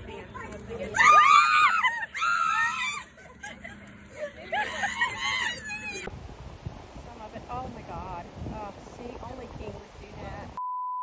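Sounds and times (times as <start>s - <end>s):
woman screaming: 1.0s - 3.1s, 4.7s - 6.1s.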